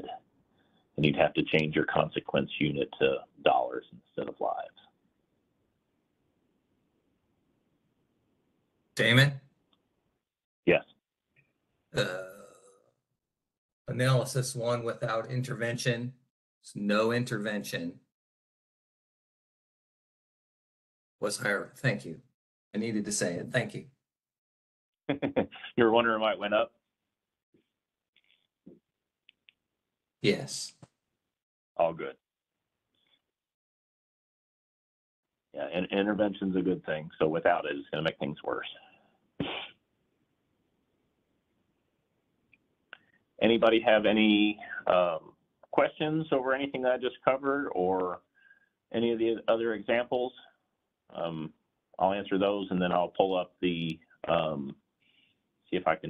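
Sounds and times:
person saying uh: 12.0s - 12.4s.

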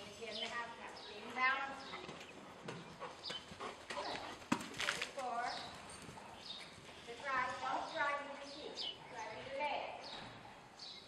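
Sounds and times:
horse trotting on dirt: 0.0s - 10.5s.

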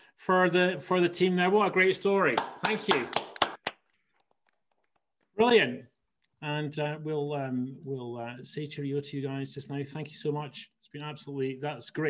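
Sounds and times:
hand claps: 2.3s - 5.1s.

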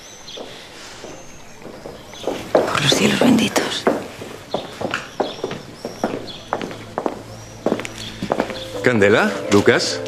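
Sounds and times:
footsteps on street: 0.0s - 10.0s.

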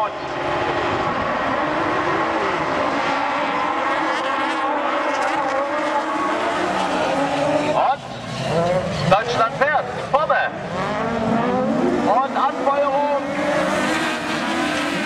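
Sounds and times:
racing buggy engines at high revs: 0.0s - 15.0s.

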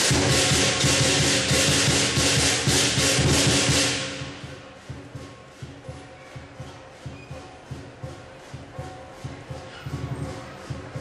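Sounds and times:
big drum beats: 0.0s - 11.0s
cymbals clashing: 0.0s - 11.0s.

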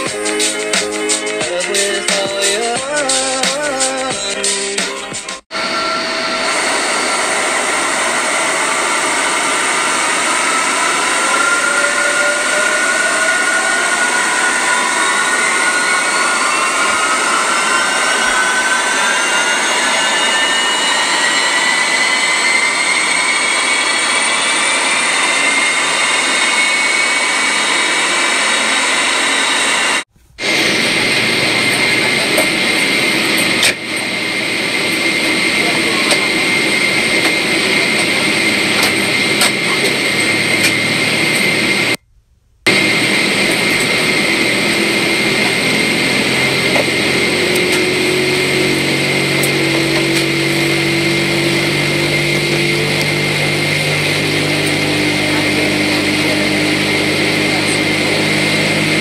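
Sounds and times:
jet engines spooling up: 0.0s - 42.0s, 42.7s - 59.0s.

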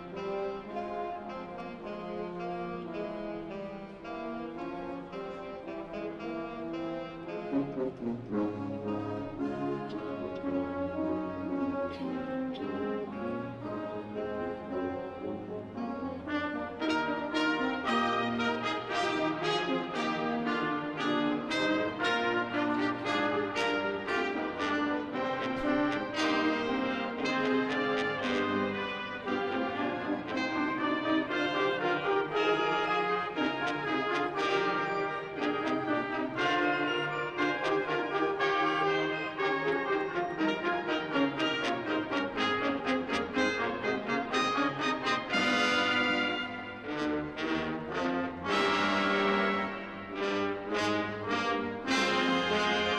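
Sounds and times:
military brass band playing: 0.0s - 52.9s.

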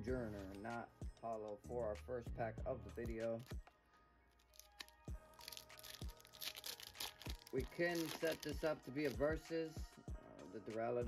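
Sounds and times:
foil wrapper tearing and crinkling: 4.4s - 9.2s.

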